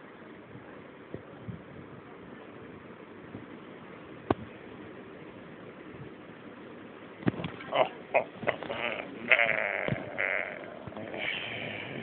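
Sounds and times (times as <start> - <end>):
high wavering bleat-like cry: 7.7 - 11.6.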